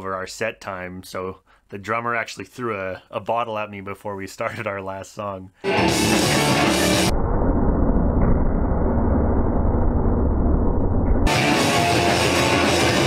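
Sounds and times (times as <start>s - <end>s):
punk band playing: 5.7s - 7.1s, 11.3s - 13.0s.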